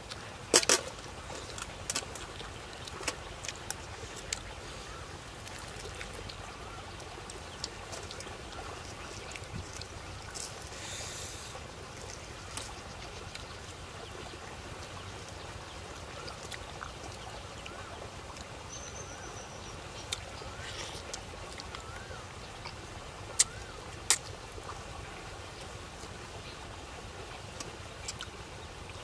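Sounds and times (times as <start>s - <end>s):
eating clicks and smacks: 23.4s - 24.4s.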